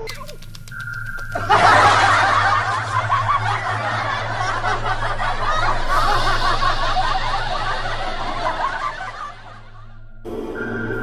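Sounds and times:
people laughing and snickering: 0:01.4 - 0:10.0.

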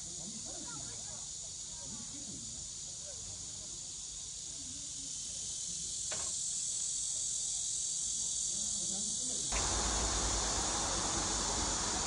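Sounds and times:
cicadas droning: 0:00.0 - 0:12.0.

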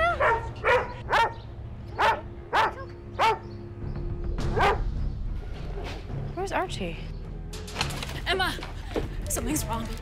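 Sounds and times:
dog barking: 0:00.0 - 0:01.4, 0:02.0 - 0:03.4, 0:04.5 - 0:04.9.

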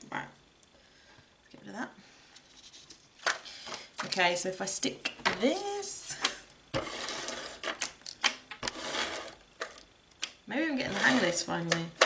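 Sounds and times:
tool scraping card: 0:06.8 - 0:07.8, 0:08.6 - 0:09.4, 0:10.9 - 0:11.4.

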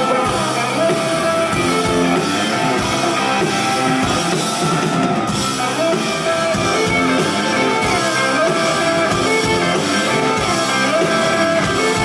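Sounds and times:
drum kit: 0:00.0 - 0:12.0
electric guitars strumming: 0:00.0 - 0:12.0.

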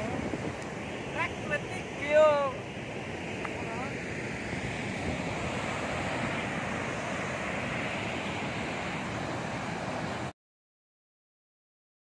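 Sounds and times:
waterfall roaring: 0:00.0 - 0:10.3
wind on microphone: 0:00.0 - 0:10.3.

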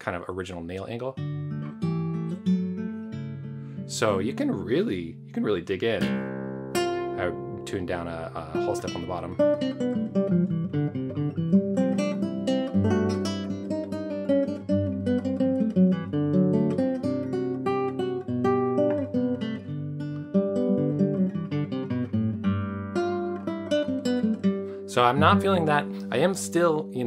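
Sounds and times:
classical guitar fingerstyle: 0:01.2 - 0:27.0.

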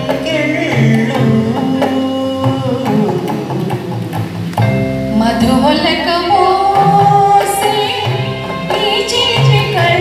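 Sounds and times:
recorded backing track: 0:00.0 - 0:10.0
woman singing into a microphone: 0:04.9 - 0:10.0.

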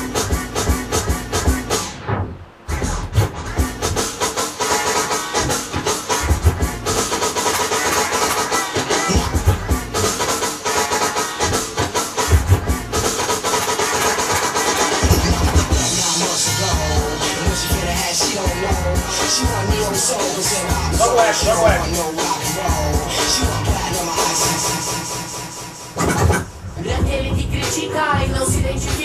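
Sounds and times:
drum beat: 0:00.0 - 0:01.8, 0:02.7 - 0:25.3
record scratching: 0:00.0 - 0:26.9.

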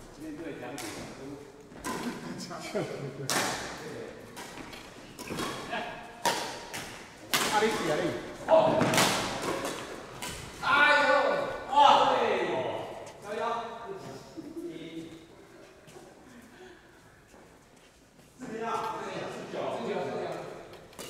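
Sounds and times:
players calling out in a hall: 0:00.0 - 0:17.6
racket hitting shuttlecock: 0:03.3 - 0:08.1, 0:08.7 - 0:10.6.

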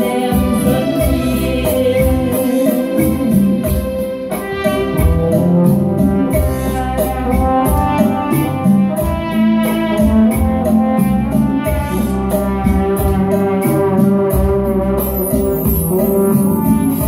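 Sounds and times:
electronic keyboard melody: 0:00.0 - 0:17.0
programmed beat: 0:00.0 - 0:17.0.

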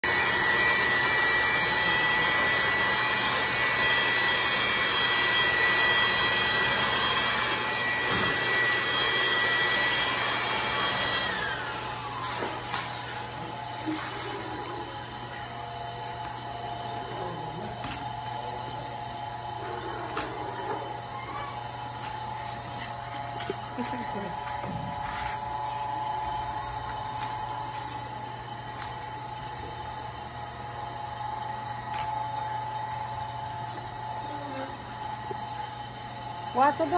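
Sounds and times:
electric motor whining: 0:00.0 - 0:18.8.

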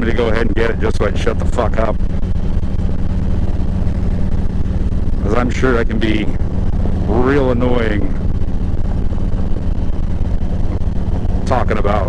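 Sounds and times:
motorcycle engine cruising: 0:00.0 - 0:12.0
road and wind noise: 0:00.0 - 0:12.0.

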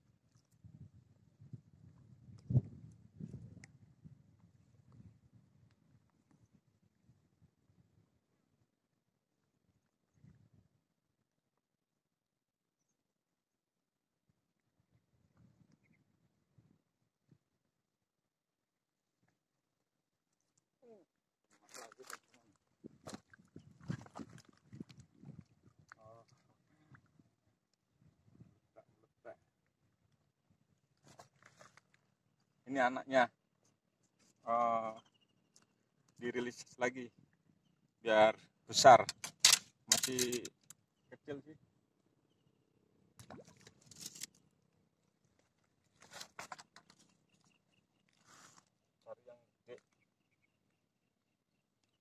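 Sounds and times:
faint rustles and clicks: 0:31.0 - 0:32.1
fishing reel clicks and rustles: 0:39.0 - 0:40.8, 0:43.8 - 0:44.4.

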